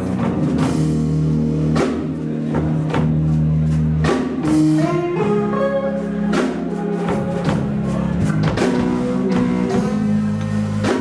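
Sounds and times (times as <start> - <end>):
drum kit strikes: 0.0 - 11.0
live blues band playing: 0.0 - 11.0.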